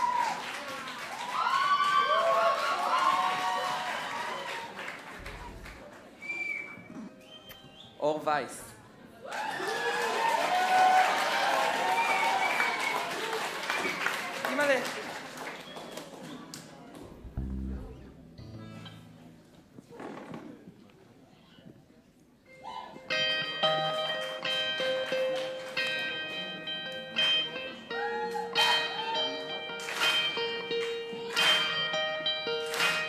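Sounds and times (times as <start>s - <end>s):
regular drum hits: 17.0s - 19.2s
low thumps: 17.0s - 19.6s
band playing sustained chords: 17.0s - 19.7s.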